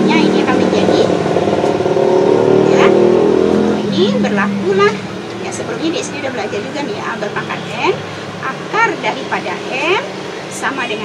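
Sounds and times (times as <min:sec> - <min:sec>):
engine droning hum: 0:00.0 - 0:11.0.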